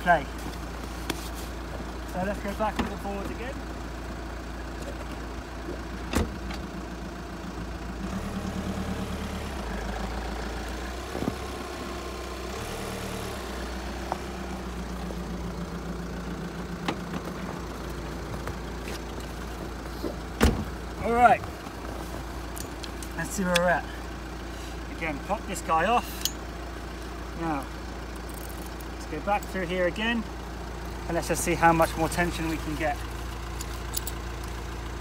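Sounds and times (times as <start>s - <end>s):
van engine running: 0.0s - 35.0s.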